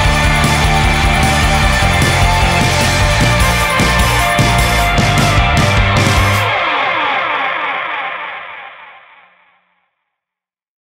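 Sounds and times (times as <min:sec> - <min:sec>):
distorted electric guitar chord ringing: 0:00.0 - 0:09.4.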